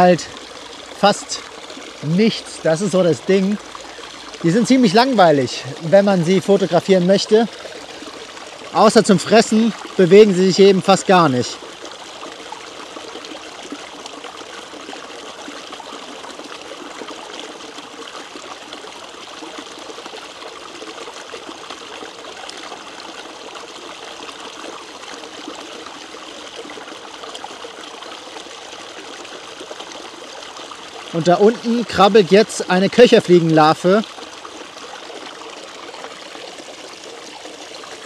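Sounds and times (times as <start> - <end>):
stream water trickling over stones: 0.0 - 38.0.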